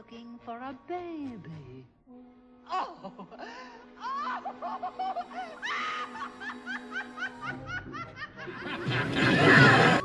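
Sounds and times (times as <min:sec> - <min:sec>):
woman laughing villainously: 0:02.8 - 0:10.0.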